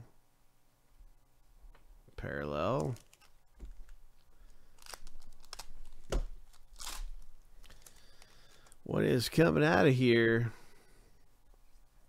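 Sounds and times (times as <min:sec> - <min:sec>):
foil wrapper tearing and crinkling: 0:02.8 - 0:08.8.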